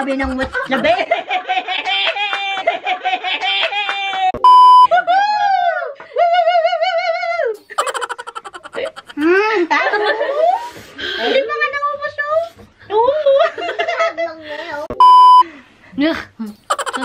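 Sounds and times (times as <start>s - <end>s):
woman laughing: 0.0s - 4.3s, 7.5s - 10.5s, 16.4s - 17.0s
censor bleep: 4.4s - 4.9s, 15.0s - 15.4s.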